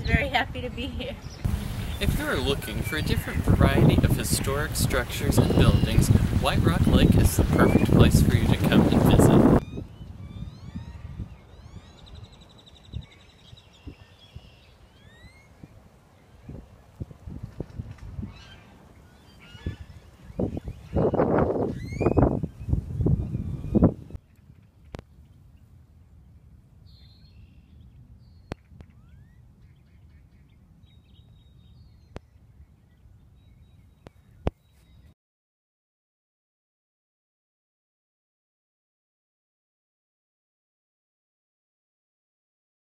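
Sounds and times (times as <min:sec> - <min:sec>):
birds chirping: 0:00.0 - 0:17.0, 0:18.2 - 0:35.2
low steady rumble: 0:00.1 - 0:04.8.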